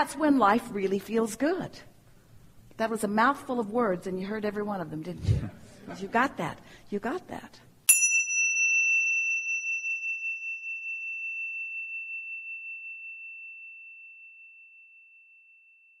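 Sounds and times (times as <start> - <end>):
small bell ringing: 7.9 - 16.0.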